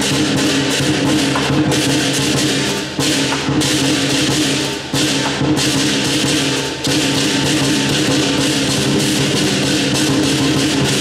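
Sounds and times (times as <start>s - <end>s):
cymbals crashing: 0.0s - 11.0s
large drum beating: 0.0s - 11.0s.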